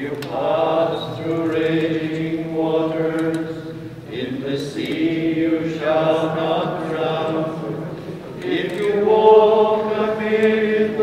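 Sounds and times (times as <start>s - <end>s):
men singing a slow chant: 0.0s - 11.0s.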